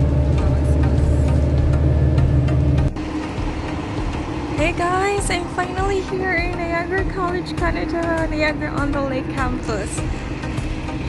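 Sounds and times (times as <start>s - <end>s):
bus engine and road rumble: 0.0s - 11.0s
street sound: 0.0s - 11.0s.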